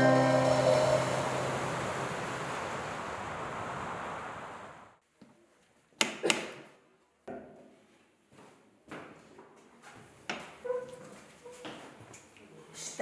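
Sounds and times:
rush of noise: 0:00.0 - 0:05.0.

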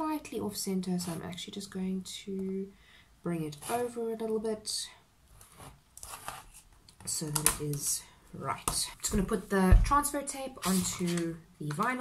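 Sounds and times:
plastic sheet scraping on paper: 0:05.4 - 0:06.6, 0:10.6 - 0:11.3.

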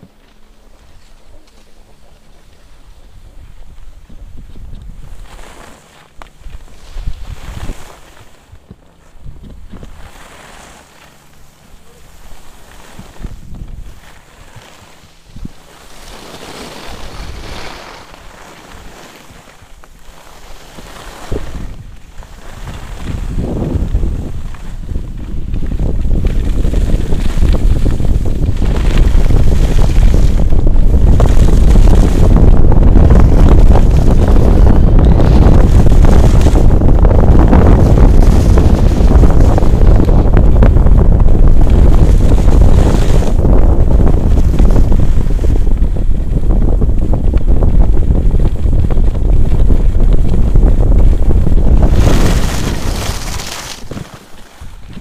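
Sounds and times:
skis scraping on snow: 0:00.0 - 0:55.0
wind rushing over microphone: 0:00.0 - 0:55.0.

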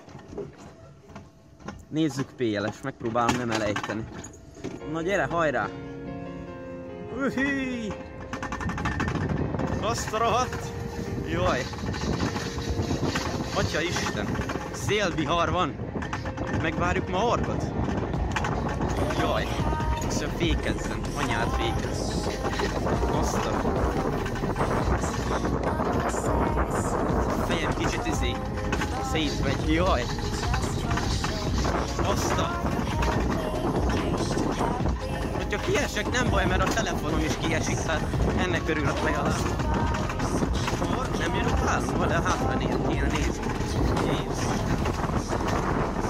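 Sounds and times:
coaster wheels clattering on rail: 0:00.0 - 0:05.7, 0:07.2 - 0:46.0
low rumble: 0:05.8 - 0:46.0
wind buffeting microphone: 0:06.4 - 0:46.0.

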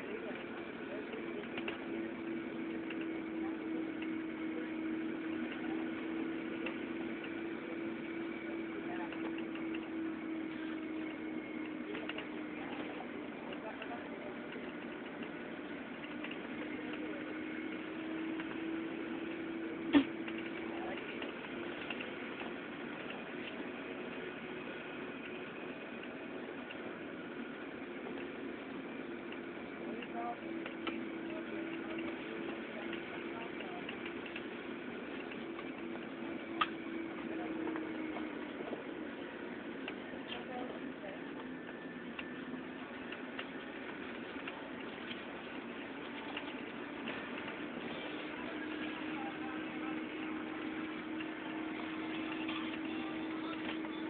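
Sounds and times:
car engine and road noise: 0:00.0 - 0:54.0
mechanical hum: 0:00.0 - 0:54.0
faint clicks: 0:29.2 - 0:38.8.

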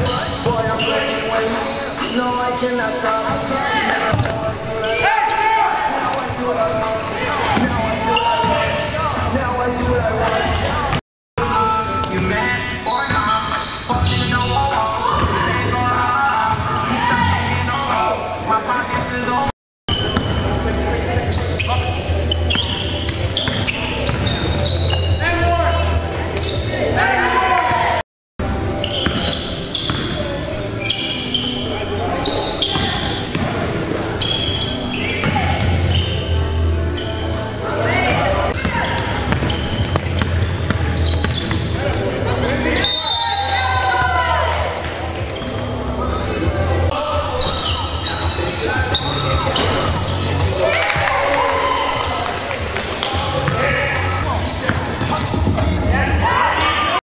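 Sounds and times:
basketball bouncing on court: 0:04.1 - 0:04.4, 0:23.2 - 0:25.0, 0:28.9 - 0:30.2, 0:32.7 - 0:33.6, 0:38.1 - 0:42.0.

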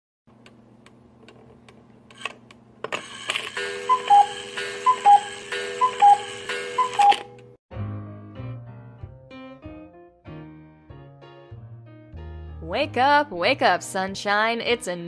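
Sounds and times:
music: 0:03.6 - 0:15.0
clock ticking: 0:03.7 - 0:07.3
two-note alarm beep: 0:03.8 - 0:07.3.

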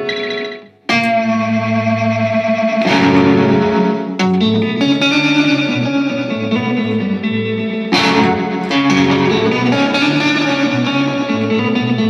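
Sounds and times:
ringing guitar chord: 0:00.0 - 0:12.0.

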